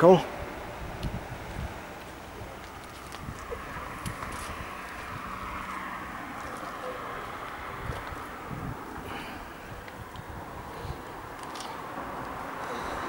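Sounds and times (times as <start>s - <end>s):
outdoor street noise: 0.0s - 13.0s
vehicle passing: 0.0s - 13.0s
wind rumbling on microphone: 0.2s - 13.0s.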